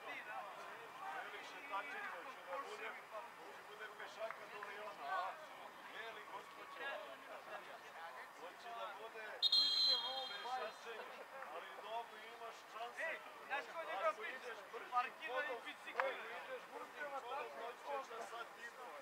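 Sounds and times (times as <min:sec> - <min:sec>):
referee whistle blast: 0:09.4 - 0:10.5
players calling out: 0:09.4 - 0:10.6.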